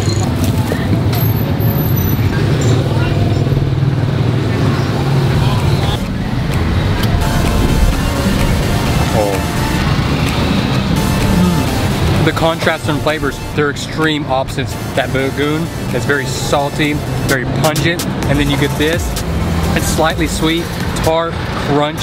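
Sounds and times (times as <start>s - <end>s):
street traffic: 0.0s - 22.0s
people talking: 4.3s - 9.8s, 11.0s - 22.0s.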